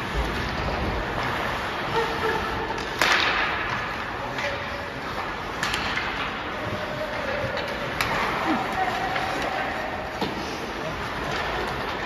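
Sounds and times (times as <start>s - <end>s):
hockey puck impact crack: 2.8s - 6.5s, 7.6s - 8.4s.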